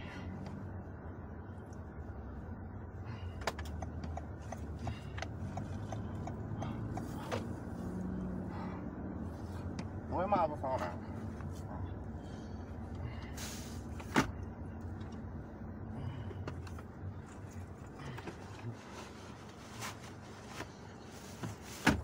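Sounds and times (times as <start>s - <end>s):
car interior engine hum: 0.0s - 22.0s
light regular ticking: 3.6s - 7.2s.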